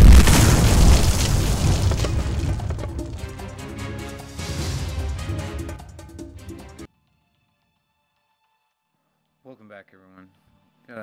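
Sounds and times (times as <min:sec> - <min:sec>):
loud deep explosion boom: 0:00.0 - 0:03.6.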